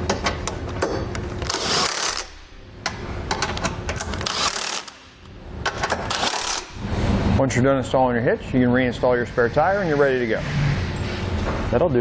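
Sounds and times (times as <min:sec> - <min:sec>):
impact wrench clatter: 0:00.0 - 0:06.8.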